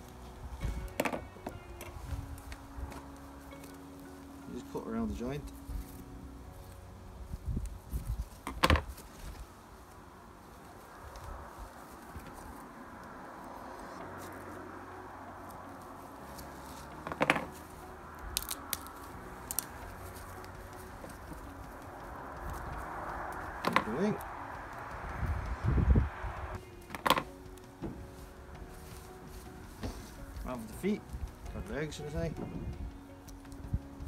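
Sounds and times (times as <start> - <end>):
steady low hiss: 0.0 - 34.0.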